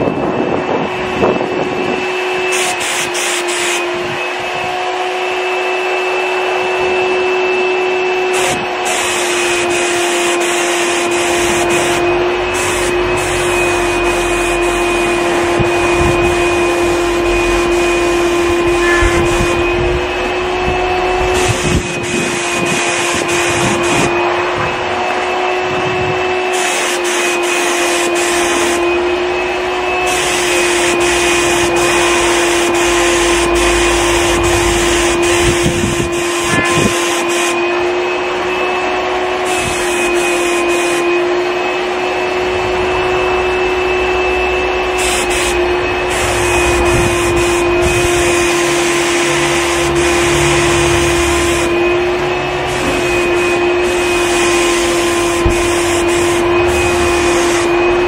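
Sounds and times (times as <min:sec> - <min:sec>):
turbine sprayer whine: 0:00.0 - 0:58.0
spray gun hissing: 0:02.3 - 0:04.0, 0:08.2 - 0:58.0.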